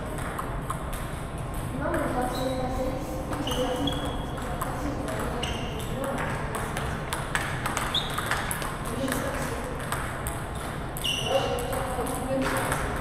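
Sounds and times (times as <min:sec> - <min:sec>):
table tennis ball clicks: 0:03.3 - 0:13.0.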